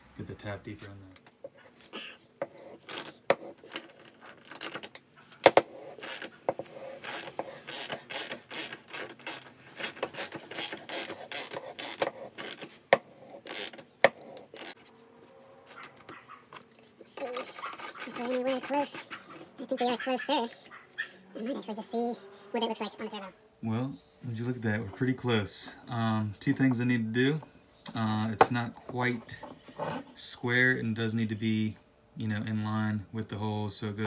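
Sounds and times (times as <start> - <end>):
ratchet wrench clicking: 7.0 - 12.6.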